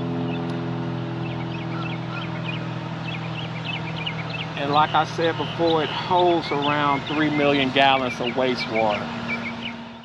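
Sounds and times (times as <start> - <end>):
low machinery hum: 0.0 - 10.0
small birds chirping: 0.0 - 10.0.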